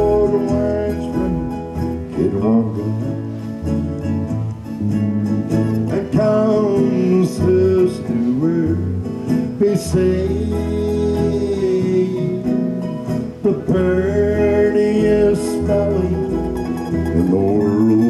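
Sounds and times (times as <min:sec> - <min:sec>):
country band playing: 0:00.0 - 0:18.0
guitar: 0:00.0 - 0:18.0
sliding melody: 0:00.0 - 0:18.0.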